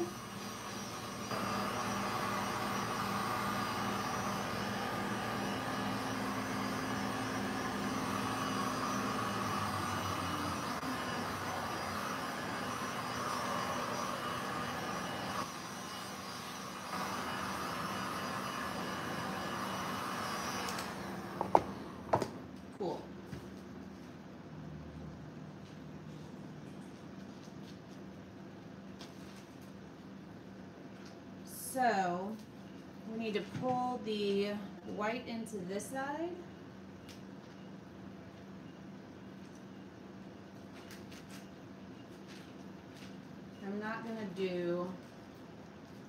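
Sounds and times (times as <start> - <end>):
heat gun blowing: 0.0 - 22.3.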